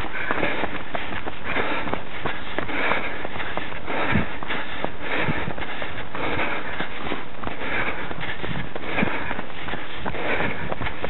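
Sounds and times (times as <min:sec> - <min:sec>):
runner breathing hard: 0:00.0 - 0:11.0.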